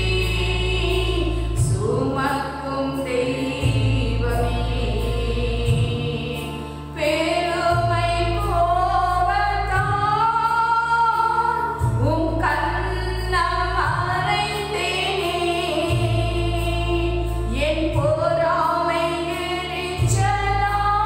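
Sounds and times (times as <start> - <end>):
low musical accompaniment: 0.0 - 21.0
woman singing a hymn: 0.0 - 21.0.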